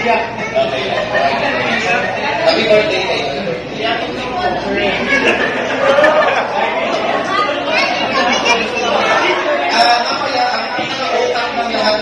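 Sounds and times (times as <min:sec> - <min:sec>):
crowd chatting in a hall: 0:00.0 - 0:12.0.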